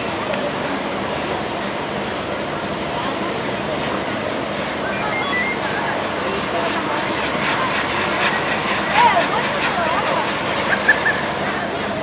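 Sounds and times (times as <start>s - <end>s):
firework fountain hissing and crackling: 0.0s - 12.0s.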